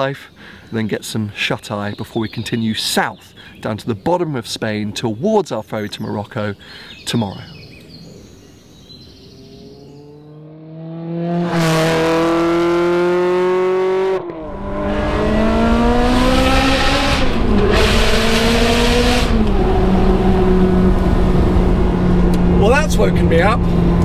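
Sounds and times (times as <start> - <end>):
car engine accelerating: 9.2 - 24.0
man's voice: 22.6 - 23.6.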